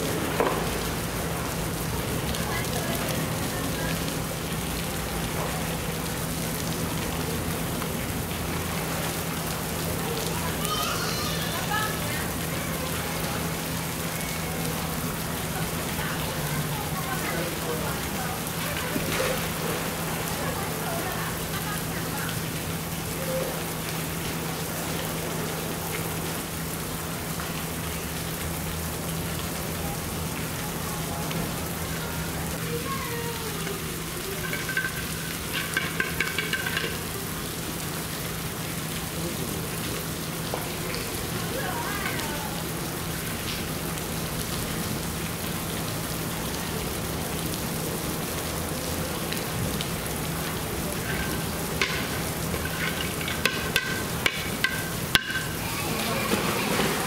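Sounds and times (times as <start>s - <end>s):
running water hiss: 0.0s - 57.0s
faint visitor voices: 9.9s - 23.8s, 55.5s - 57.0s.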